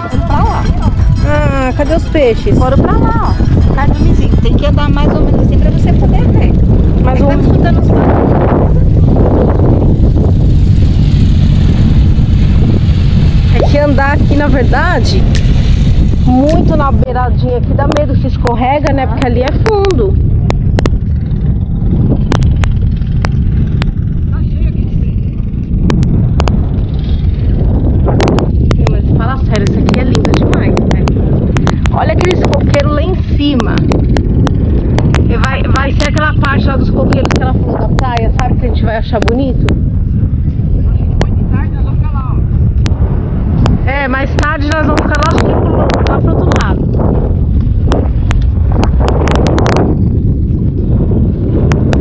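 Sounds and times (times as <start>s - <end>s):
wind buffeting microphone: 0.0s - 52.0s
sharp crackles: 8.7s - 17.1s
muffled voices talking: 43.8s - 46.9s.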